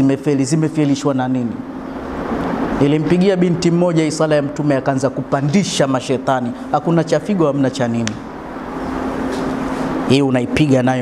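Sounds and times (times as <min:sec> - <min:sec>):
steady rushing noise: 0:00.2 - 0:11.0.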